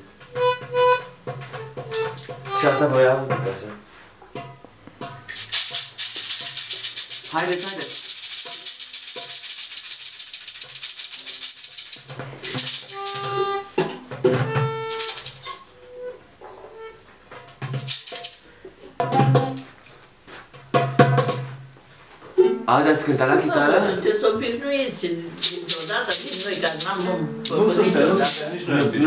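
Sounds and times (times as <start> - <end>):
toy horn toots: 0.3 - 2.9, 12.4 - 13.8, 14.4 - 17.0
hand shaker rattling: 5.3 - 13.7, 14.5 - 15.6, 17.7 - 18.5, 19.4 - 20.0, 21.2 - 21.4, 25.4 - 29.0.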